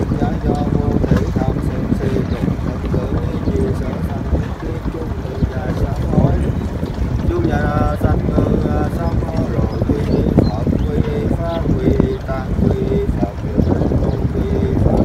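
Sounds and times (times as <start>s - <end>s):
voices chanting: 0.0s - 15.0s
wind buffeting microphone: 0.0s - 15.0s.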